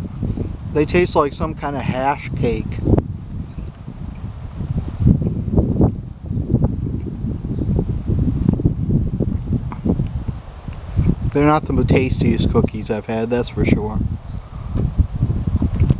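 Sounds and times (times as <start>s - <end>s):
wind buffeting microphone: 0.0s - 15.9s
leaves rustling: 2.0s - 12.4s.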